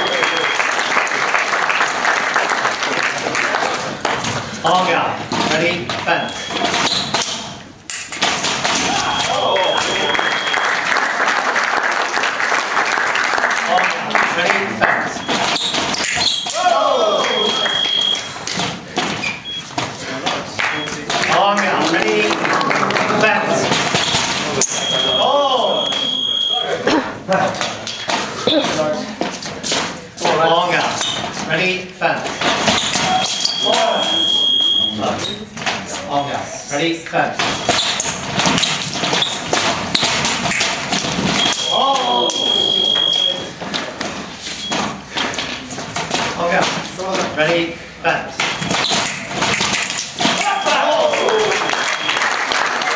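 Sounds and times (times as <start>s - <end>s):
room noise: 0.0s - 52.9s
scoring machine beep: 6.1s - 7.1s, 9.0s - 10.8s, 17.2s - 18.4s, 19.3s - 19.8s, 24.0s - 26.8s, 32.8s - 35.4s, 41.4s - 43.6s
footsteps: 17.2s - 24.8s, 26.9s - 33.6s, 42.8s - 50.7s.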